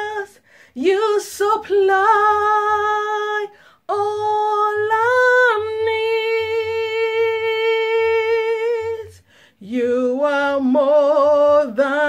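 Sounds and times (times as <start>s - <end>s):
woman singing long held notes: 0.0s - 12.0s
breath: 0.4s - 0.8s, 3.5s - 3.8s, 9.2s - 9.6s.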